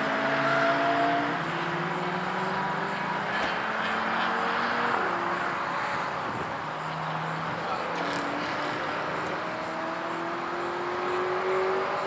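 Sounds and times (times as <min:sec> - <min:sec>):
distant car engines humming: 0:00.0 - 0:12.0.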